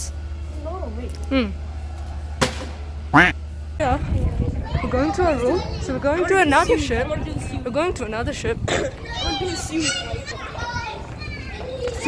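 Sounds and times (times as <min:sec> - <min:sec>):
low steady rumble: 0:00.0 - 0:12.0
child talking: 0:04.0 - 0:07.7, 0:08.6 - 0:12.0.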